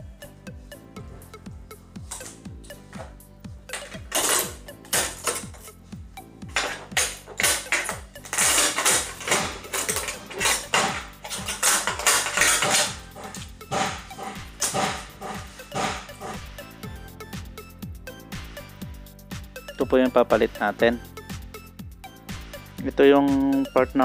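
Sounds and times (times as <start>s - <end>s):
background music with steady beat: 0.0s - 24.0s
strips crackling off sheet metal: 6.6s - 16.4s.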